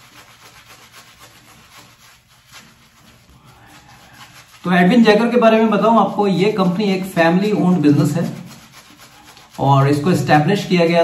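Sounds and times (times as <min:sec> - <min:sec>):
shaving brush rubbing lather: 0:00.0 - 0:11.0.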